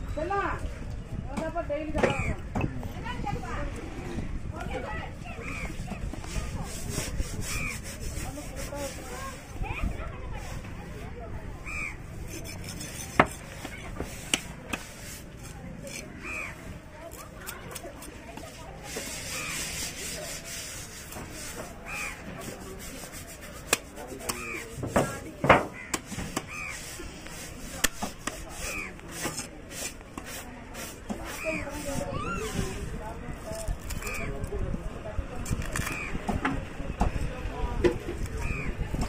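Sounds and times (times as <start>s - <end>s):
knife scraping fish on wood: 6.2s - 9.5s, 12.2s - 32.6s
crows cawing: 16.2s - 16.6s, 25.7s - 26.8s, 38.4s - 38.7s.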